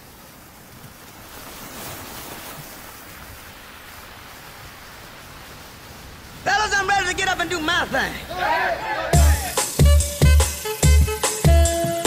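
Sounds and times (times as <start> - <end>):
steady rushing noise: 2.6 - 9.8.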